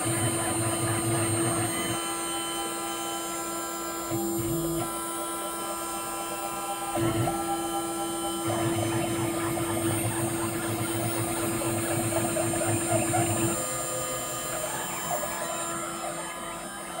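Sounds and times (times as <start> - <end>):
milling machine spindle whine: 0.0 - 17.0
end mill cutting metal: 0.1 - 17.0.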